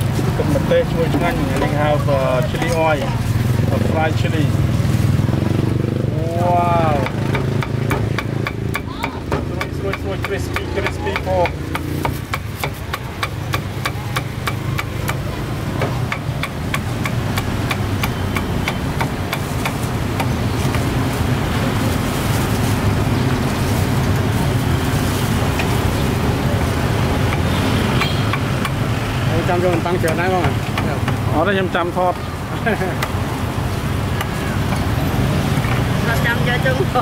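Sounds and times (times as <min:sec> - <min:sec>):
cleaver chopping on wooden board: 0:07.0 - 0:20.8.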